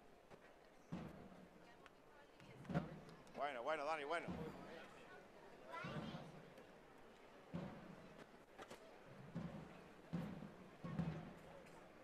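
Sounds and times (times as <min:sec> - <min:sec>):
murmur of street crowd: 0:00.0 - 0:12.0.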